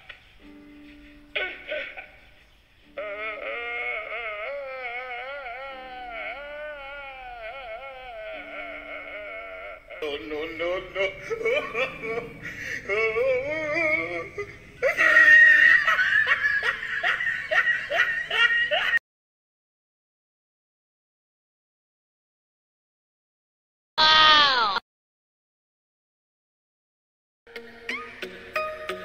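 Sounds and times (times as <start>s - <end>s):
man wailing with laughter: 1.3s - 19.0s.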